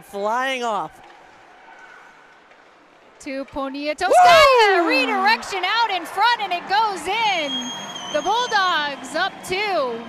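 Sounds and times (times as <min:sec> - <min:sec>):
ice rink crowd hiss: 0:04.9 - 0:10.0.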